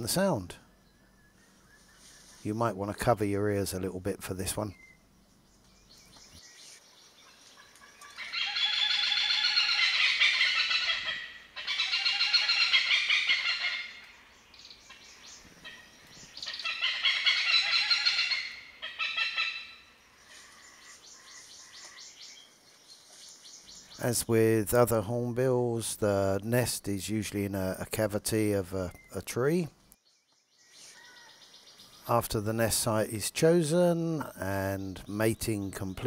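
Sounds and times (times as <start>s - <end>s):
hornbill calling: 5.9s - 24.1s.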